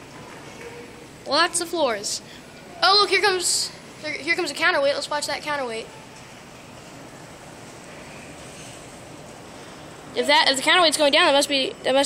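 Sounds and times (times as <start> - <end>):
atrium ambience hiss: 0.0 - 12.0.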